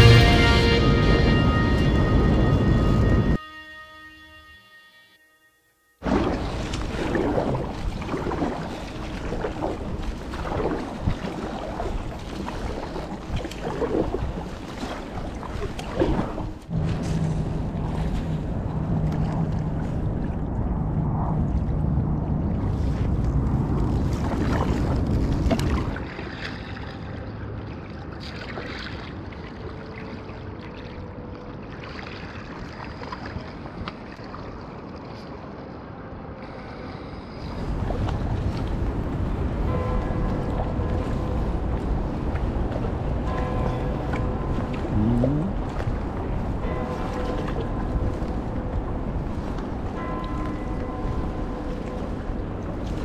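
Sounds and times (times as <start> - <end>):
wind rumble on microphone: 0.0 - 3.4, 6.0 - 28.2, 32.4 - 53.0
paddle blades splashing: 6.0 - 20.8, 21.5 - 36.8, 37.4 - 53.0.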